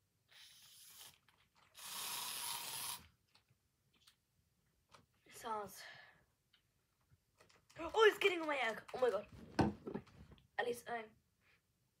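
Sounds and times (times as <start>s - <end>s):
aerosol spray can hissing: 1.8s - 3.0s.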